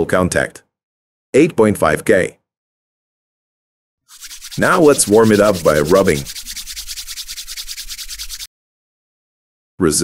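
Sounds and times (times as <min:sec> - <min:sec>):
hands rubbing briskly: 0:04.1 - 0:08.5.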